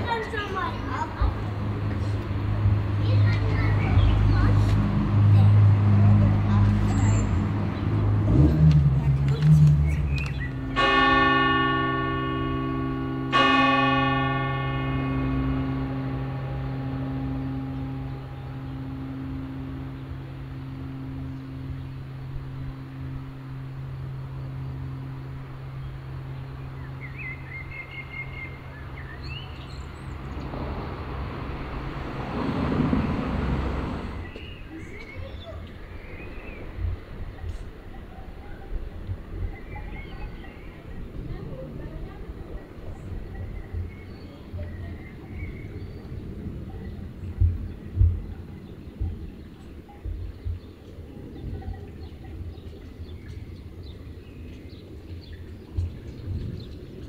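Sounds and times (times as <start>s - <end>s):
church bell ringing: 9.5s - 30.2s.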